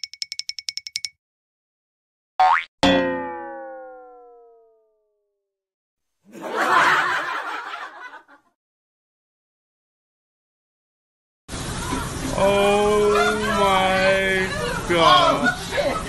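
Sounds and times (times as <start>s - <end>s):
high ticking dings: 0.0s - 1.2s, 2.4s - 4.9s
cartoon boing: 2.4s - 5.3s.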